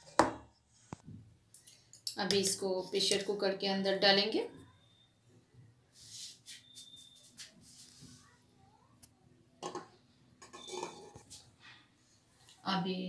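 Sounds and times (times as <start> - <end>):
cake tin scraping and knocking: 9.6 - 11.4.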